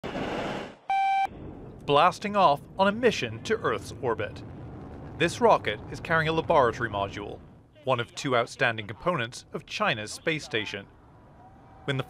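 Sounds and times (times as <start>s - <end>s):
short electronic beep: 0.9s - 1.3s.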